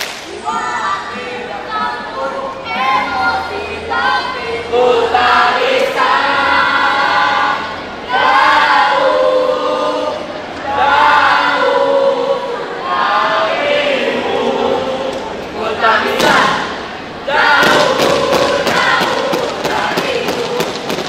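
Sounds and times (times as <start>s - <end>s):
children singing a cheer in unison: 0.0s - 21.0s.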